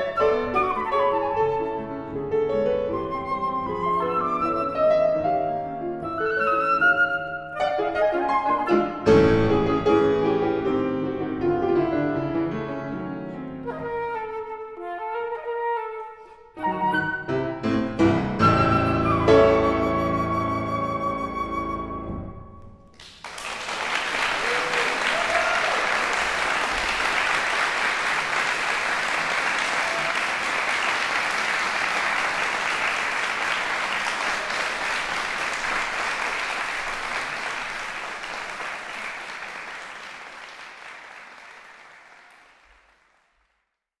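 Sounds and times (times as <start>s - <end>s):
audience applause: 22.9s - 43.6s.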